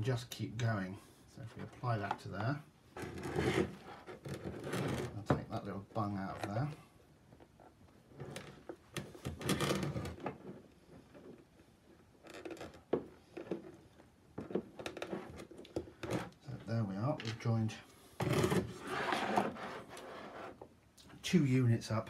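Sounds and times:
plastic tubing clicking and rubbing: 0:06.2 - 0:16.6.

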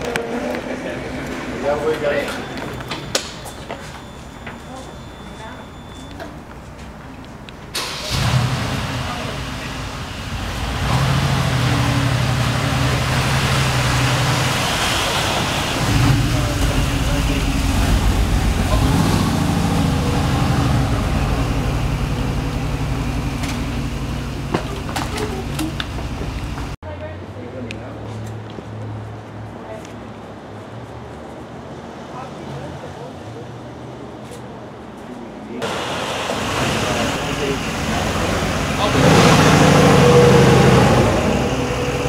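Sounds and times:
car engine starting and running: 0:07.6 - 0:26.8, 0:35.6 - 0:42.0
loud rushing noise: 0:07.8 - 0:24.5, 0:35.6 - 0:42.0.

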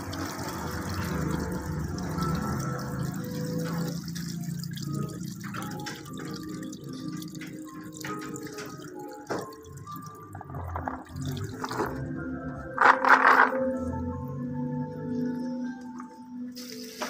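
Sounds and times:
water splashing into a bucket: 0:00.0 - 0:12.2.

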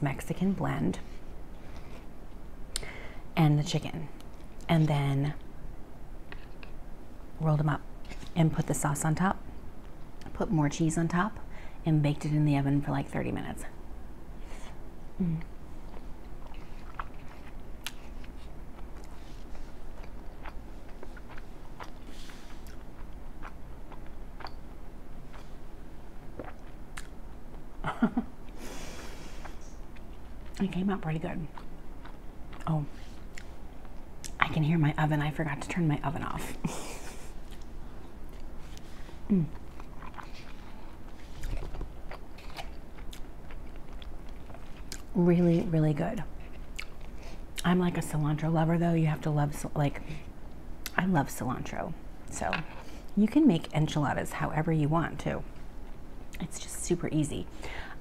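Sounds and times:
person humming: 0:15.2 - 0:15.5
close chewing food: 0:15.9 - 0:24.6, 0:39.5 - 0:45.1.

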